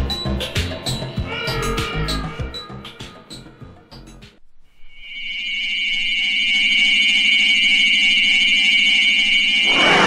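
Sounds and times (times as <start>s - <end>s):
drum beat and bass: 0.0s - 4.4s.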